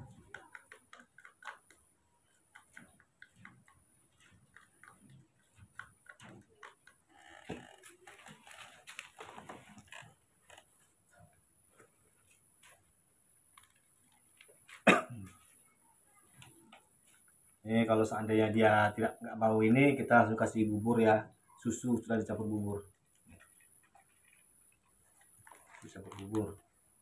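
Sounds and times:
rustling handling: 2.4s - 12.9s, 23.0s - 26.6s.

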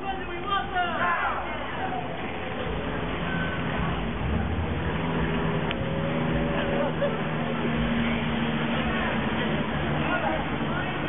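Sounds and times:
vehicle engine rumbling by: 1.4s - 11.0s.

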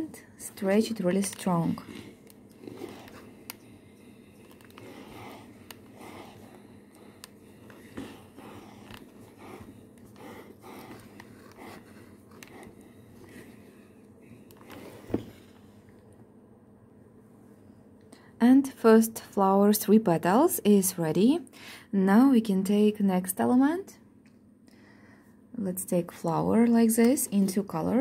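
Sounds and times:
iron scraping over cloth: 0.6s - 13.6s, 14.6s - 15.5s.

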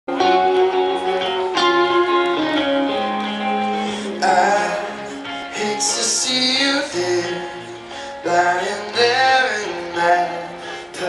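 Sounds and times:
live guitar through speakers: 0.1s - 11.0s.

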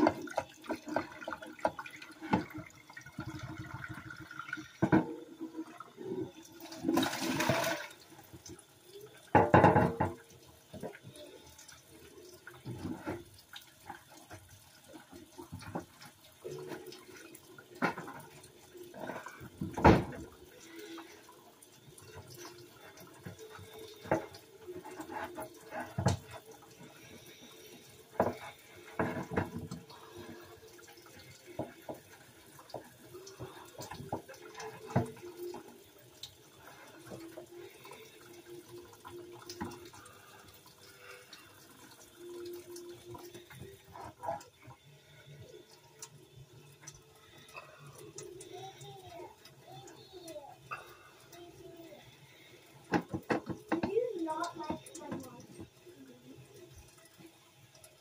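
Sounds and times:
water running into sink: 0.0s - 58.0s
dishes clattering: 9.3s - 10.2s.

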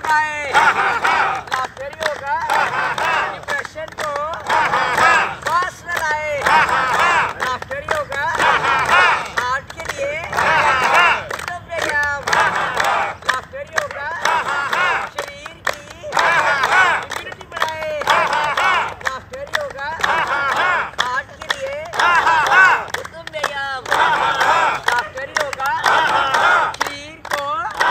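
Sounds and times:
hands clapping: 0.0s - 27.9s
group laughing loudly: 0.5s - 1.5s, 2.4s - 3.4s.

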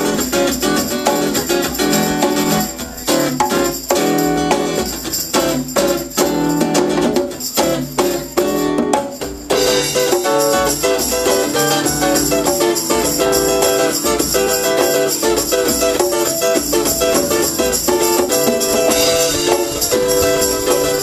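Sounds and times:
congas: 0.0s - 21.0s
drum kit: 0.0s - 21.0s
jingling tambourine: 0.0s - 21.0s
strummed acoustic guitar: 0.0s - 21.0s.

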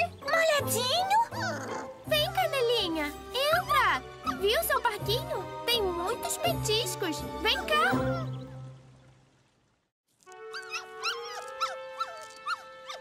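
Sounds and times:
soft background music: 0.0s - 9.4s, 10.2s - 13.0s
cartoon puppies whimpering: 0.8s - 2.6s, 7.5s - 8.5s, 10.5s - 13.0s.

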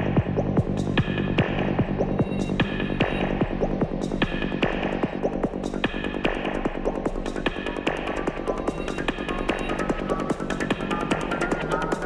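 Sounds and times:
driving kick drum: 0.0s - 12.0s
rolling bass: 0.0s - 12.0s.

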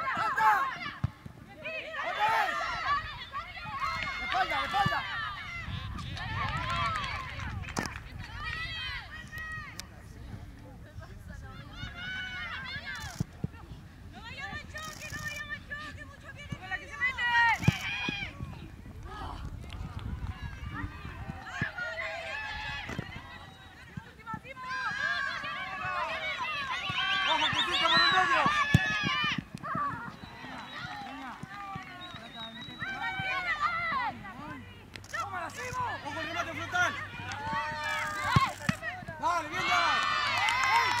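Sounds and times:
voices calling out: 20.5s - 41.0s
football being kicked: 28.4s - 30.1s.

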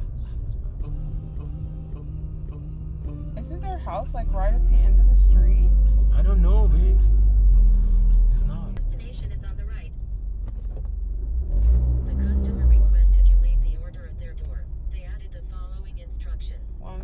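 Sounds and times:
car driving rumble inside cabin: 0.0s - 17.0s.

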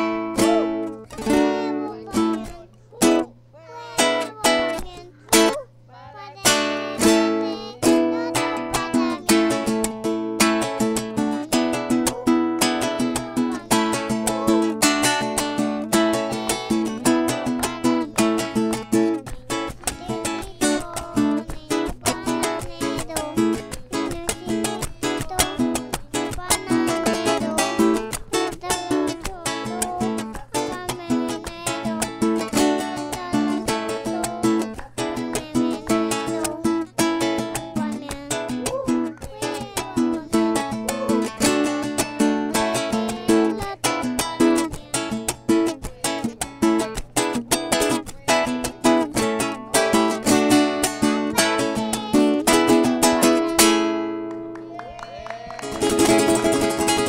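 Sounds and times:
acoustic guitar strumming: 0.0s - 54.6s, 55.6s - 57.0s.

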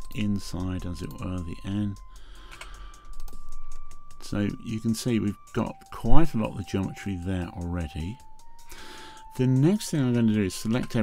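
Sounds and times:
keyboard and mouse clicking: 2.4s - 4.0s.

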